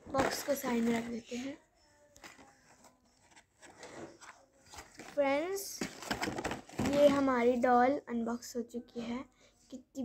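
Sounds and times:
cardboard and plastic rustling: 0.0 - 1.5, 2.2 - 7.6.

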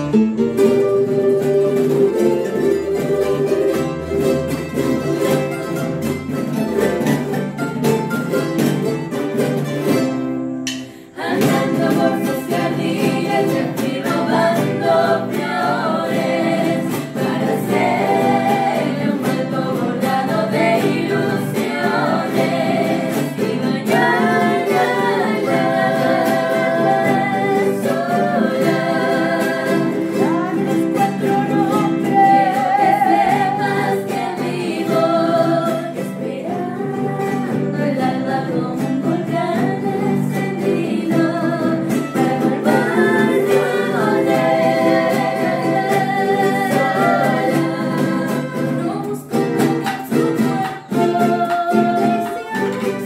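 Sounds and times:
acoustic guitars: 0.0 - 53.0
strummed charango: 0.0 - 53.0
women singing together: 0.5 - 5.3, 10.8 - 53.0.

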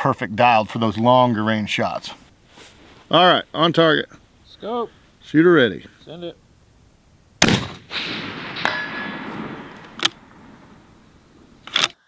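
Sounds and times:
bullet ringing steel target: 7.4 - 10.8
rifle shot: 7.4 - 11.9.

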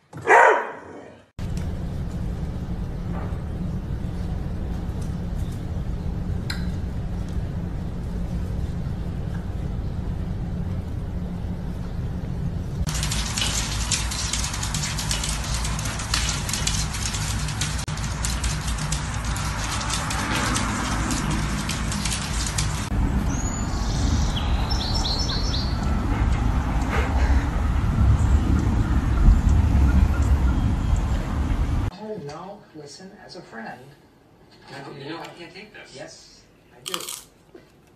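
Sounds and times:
low hum: 1.4 - 31.9
bird chirps: 23.3 - 25.9.

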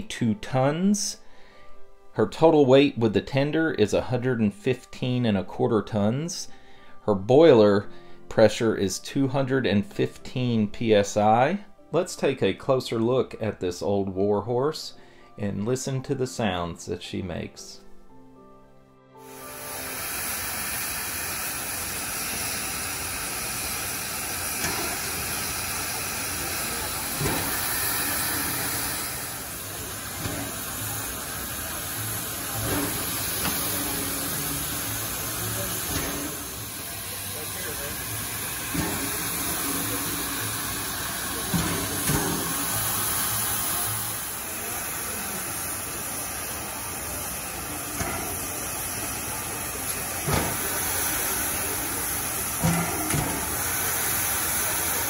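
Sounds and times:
steam hissing: 19.2 - 55.0.

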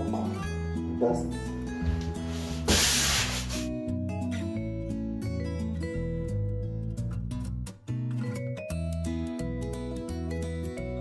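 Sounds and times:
sanding sponge rubbing drywall: 2.3 - 3.7.

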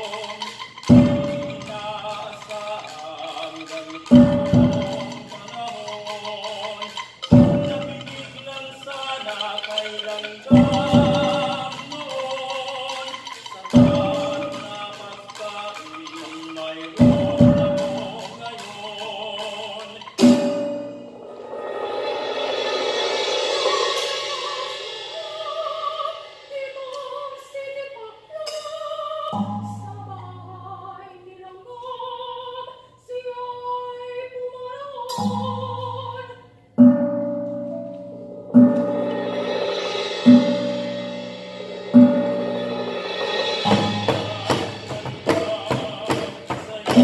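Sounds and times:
percussion strike: 0.0 - 27.4, 36.8 - 47.0
shimmering sustained percussion: 19.7 - 27.9, 38.3 - 46.9
deep ringing percussion strokes: 38.3 - 46.1.

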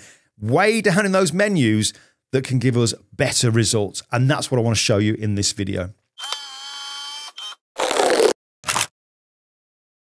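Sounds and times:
camera shutter-like bursts: 6.2 - 7.6.

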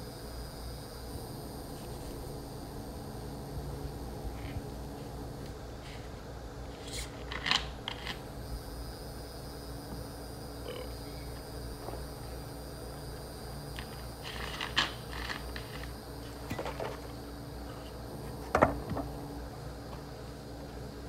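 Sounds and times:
low background hum: 0.0 - 21.0.

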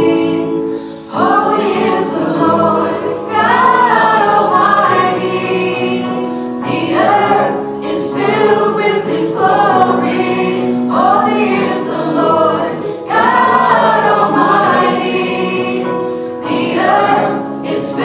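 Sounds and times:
group singing praise song: 0.0 - 18.0
keyboard accompaniment: 0.0 - 18.0.

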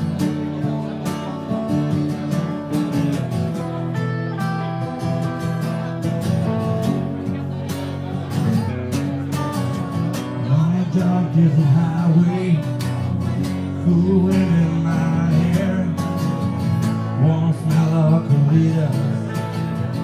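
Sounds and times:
acoustic guitar strumming: 0.0 - 20.0
man singing: 8.4 - 20.0.

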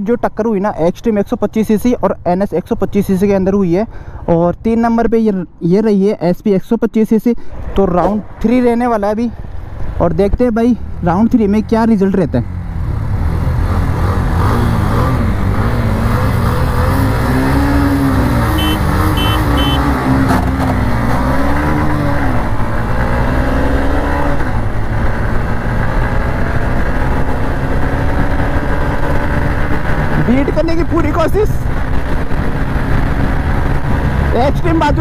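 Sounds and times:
motorcycles accelerating hard: 12.4 - 35.0.

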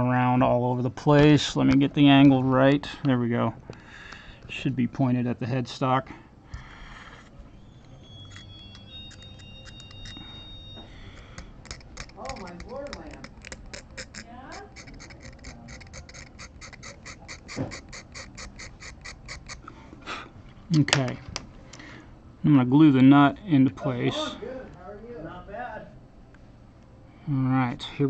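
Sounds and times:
metal pick scraping guitar nut: 7.8 - 10.2, 11.1 - 19.6.

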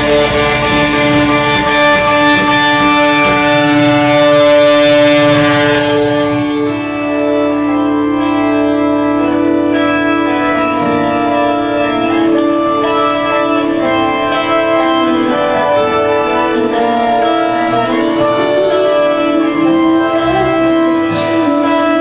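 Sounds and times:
drums and cymbals crashing: 0.0 - 5.8
distorted electric guitar chords: 0.0 - 22.0.

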